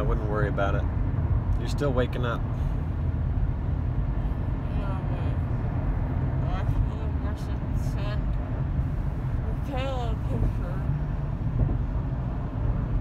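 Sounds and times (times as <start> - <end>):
car road and engine rumble: 0.0 - 13.0.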